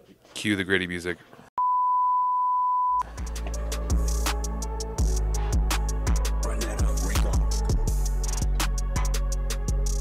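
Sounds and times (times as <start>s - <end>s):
steady electronic beep: 1.6s - 3.1s.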